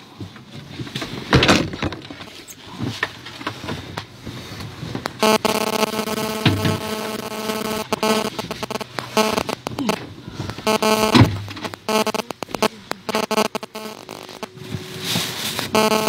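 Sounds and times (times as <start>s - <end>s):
clicks: 5.0s - 14.6s
steady buzzing tone: 5.1s - 14.6s, 15.6s - 16.0s.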